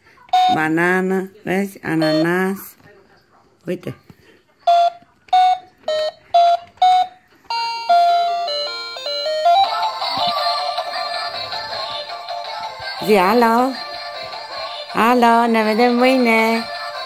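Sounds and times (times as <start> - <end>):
electronic toy melody: 4.6 - 17.0.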